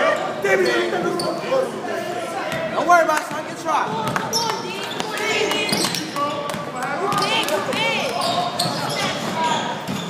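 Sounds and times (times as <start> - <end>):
players calling out: 3.5 - 9.8.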